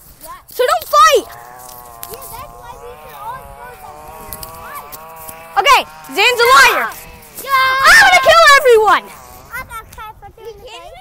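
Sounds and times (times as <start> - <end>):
young person calling out: 0.5 - 4.9, 5.6 - 11.0
faint voices: 0.5 - 11.0.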